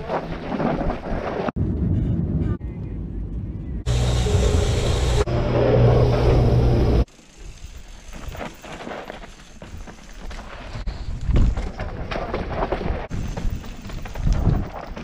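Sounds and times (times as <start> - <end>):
tyres on loose dirt: 3.9 - 15.0.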